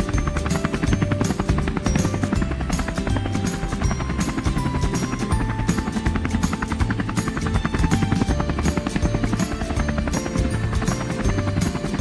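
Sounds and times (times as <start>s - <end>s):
background music with steady beat: 0.0s - 12.0s
helicopter rotor chop: 0.0s - 12.0s.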